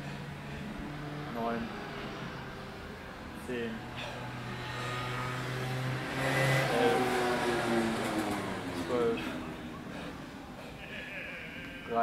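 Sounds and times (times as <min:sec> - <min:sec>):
vehicle engine passing: 0:00.0 - 0:10.8.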